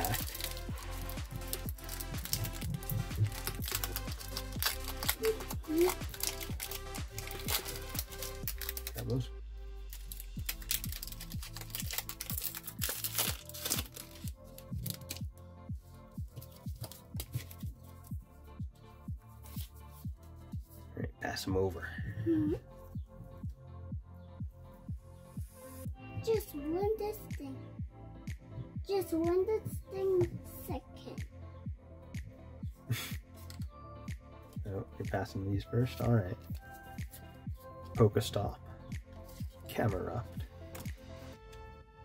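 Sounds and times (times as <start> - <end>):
foil wrapper crinkling and tearing: 0.0 - 9.2, 9.9 - 15.2
background music with steady beat: 0.0 - 42.0.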